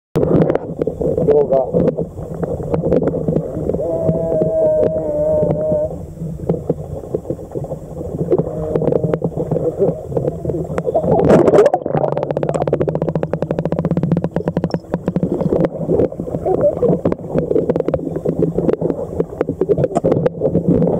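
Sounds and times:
fine bubbling crackle: 0.2 - 20.9
water sloshing and bubbling: 0.2 - 20.9.

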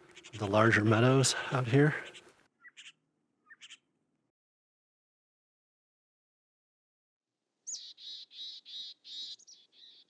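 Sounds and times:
bird calling: 0.0 - 3.9, 7.6 - 10.0.

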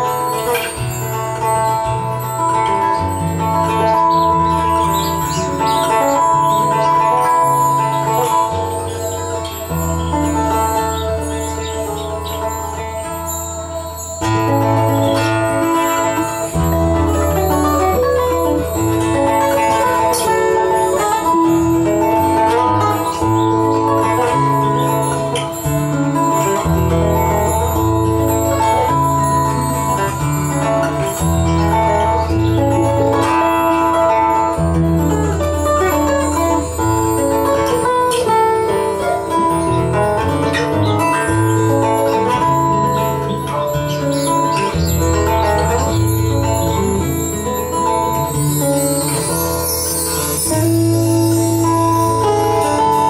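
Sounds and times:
guitar: 0.0 - 53.0.

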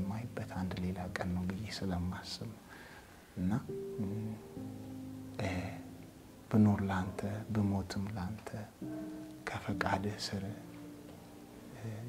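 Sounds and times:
man speaking: 3.4 - 4.5, 5.4 - 5.9, 6.5 - 8.8.

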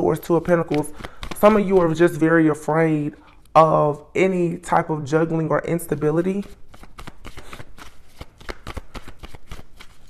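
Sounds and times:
cards being shuffled: 0.0 - 2.2, 5.9 - 10.0.

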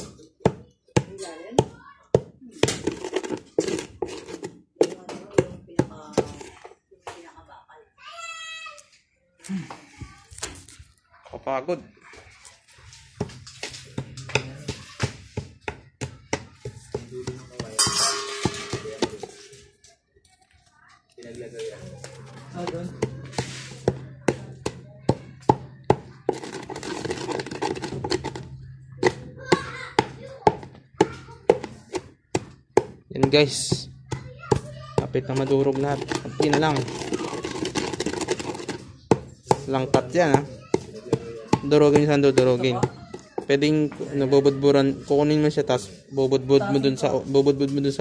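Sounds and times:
pestle pounding in a mortar: 0.0 - 6.5, 22.5 - 43.6.

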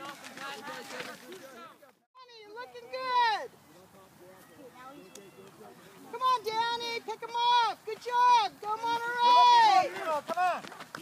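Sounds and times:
spectators shouting: 6.1 - 10.6.

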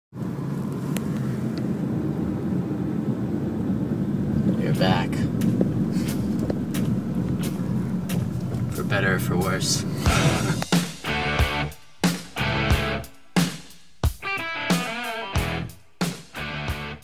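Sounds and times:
car cabin road drone: 0.1 - 13.4.

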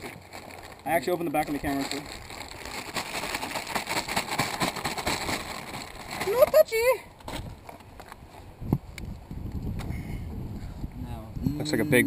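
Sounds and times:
plastic bag crinkling: 0.0 - 7.0.

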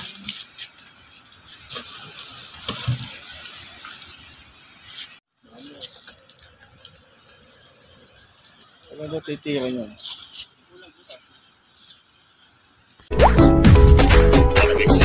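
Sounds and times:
steady watery hiss: 0.0 - 13.1.

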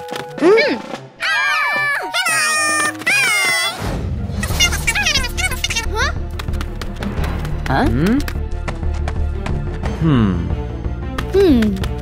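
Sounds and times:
background music: 0.0 - 12.0
cartoon children's frightened cries: 1.2 - 3.8.

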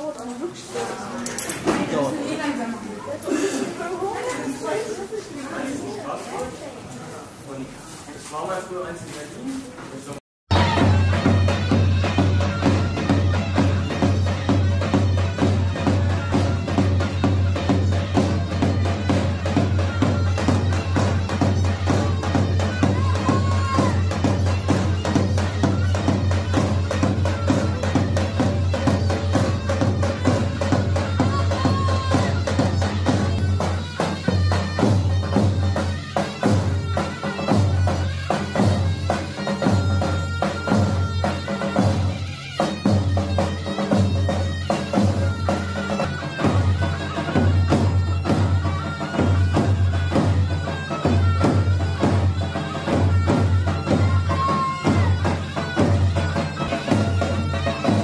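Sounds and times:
drum beats: 1.4 - 2.6, 10.5 - 58.0
reedy shawm melody: 10.5 - 58.0.

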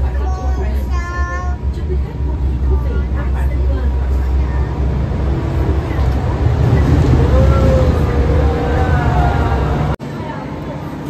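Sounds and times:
low rumble of moving vehicle: 0.0 - 11.0
voices: 0.0 - 11.0.

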